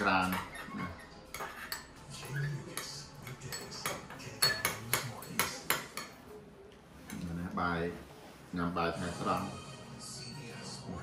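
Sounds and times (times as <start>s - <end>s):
cutlery clinking on ceramic bowl: 0.0s - 6.2s.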